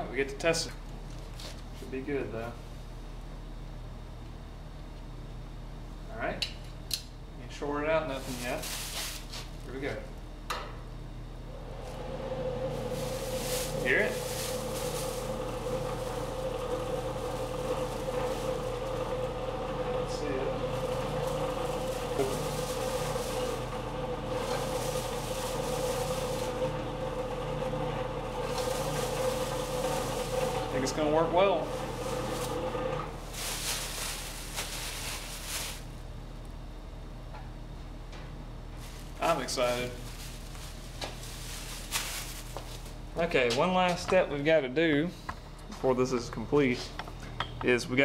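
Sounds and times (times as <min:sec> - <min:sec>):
electric blower humming and whining: 0:11.3 - 0:36.2.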